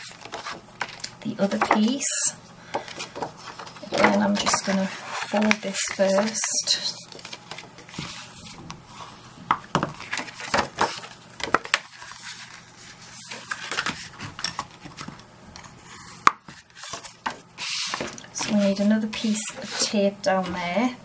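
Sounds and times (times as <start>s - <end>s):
cardstock rustling and scraping: 0.0s - 2.1s, 2.7s - 20.6s.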